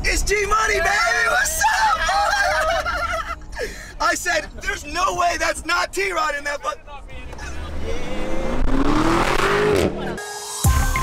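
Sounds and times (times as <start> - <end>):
people shouting and laughing: 0.3 - 3.6.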